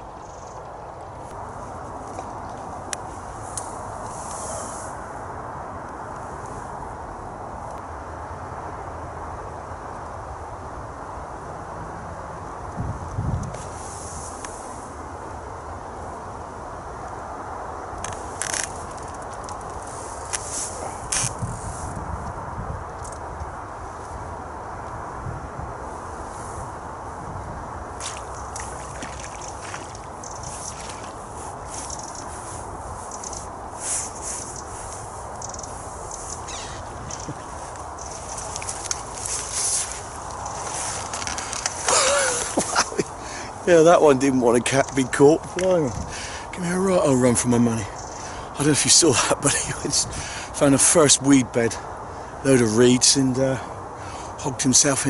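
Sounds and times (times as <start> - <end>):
outdoor background hiss: 0.0 - 55.0
rustles and clicks of handling: 18.0 - 21.9, 37.0 - 43.1.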